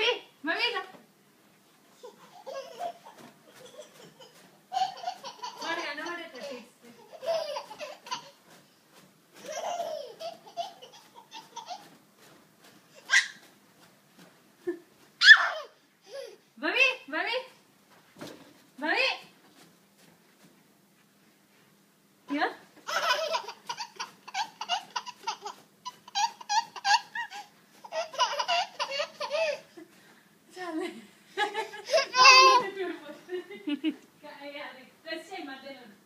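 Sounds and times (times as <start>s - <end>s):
toddler laughing: 2.0s - 8.6s, 9.4s - 12.0s, 13.0s - 13.5s, 15.2s - 16.4s, 22.8s - 29.8s, 31.5s - 32.8s.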